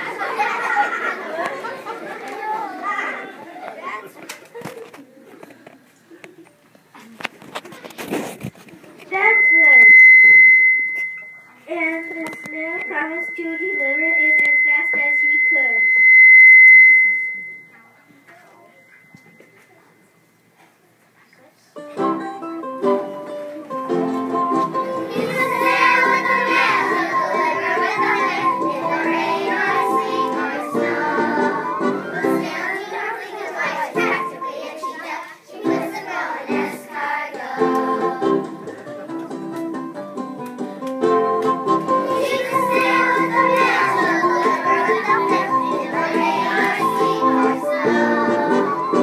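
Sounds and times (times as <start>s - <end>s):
children's voices: 0.0s - 8.2s, 11.5s - 15.8s, 24.8s - 38.8s, 42.0s - 49.0s
high-pitched loudspeaker feedback: 9.1s - 17.9s
musical accompaniment: 21.8s - 49.0s.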